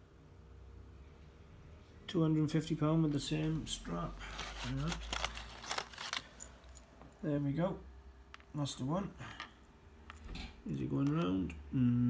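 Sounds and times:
plastic bags crinkling: 4.1s - 6.9s
man murmuring: 11.6s - 12.0s.

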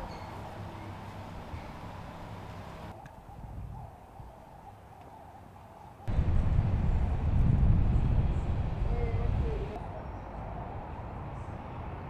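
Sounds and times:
low rumble: 6.1s - 9.8s.

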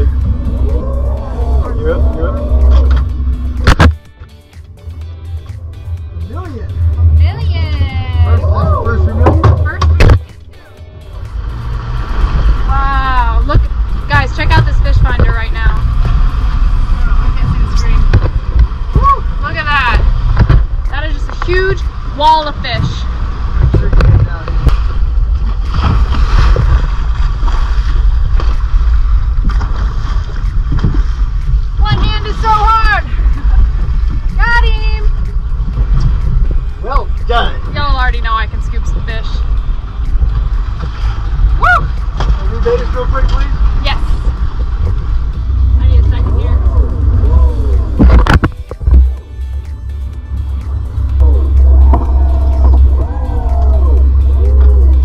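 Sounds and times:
steady low rumble: 0.0s - 55.0s.

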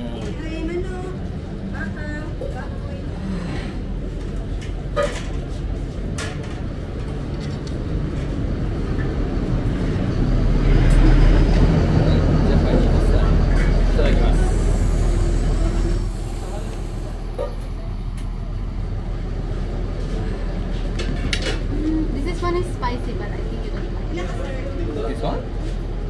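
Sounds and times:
bus engine rumbling: 0.0s - 26.0s.

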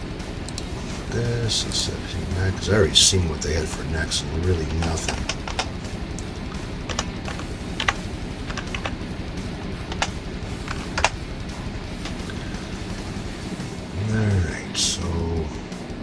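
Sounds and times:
low background hum: 0.0s - 16.0s
keyboard keys clicking: 4.7s - 5.7s, 6.9s - 9.0s, 9.9s - 11.2s.

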